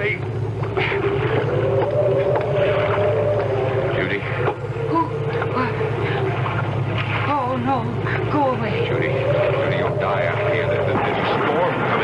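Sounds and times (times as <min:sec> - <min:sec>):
boat engine running: 0:00.0 - 0:12.0
wavering tone: 0:00.6 - 0:12.0.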